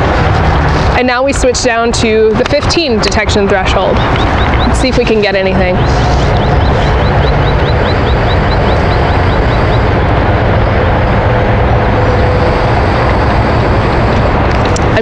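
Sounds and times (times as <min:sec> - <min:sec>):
loud rushing outdoor noise: 0:00.0 - 0:15.0
low hum: 0:00.0 - 0:15.0
bird chirping: 0:03.6 - 0:10.0.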